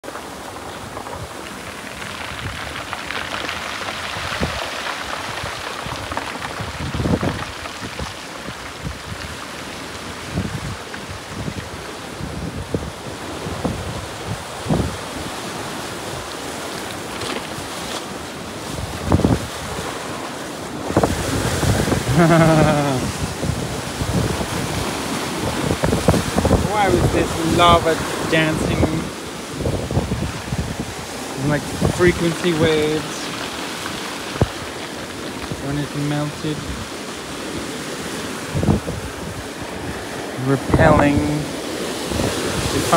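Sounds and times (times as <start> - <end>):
surf breaking on rocks: 0.0 - 42.9
wind buffeting microphone: 0.2 - 42.9.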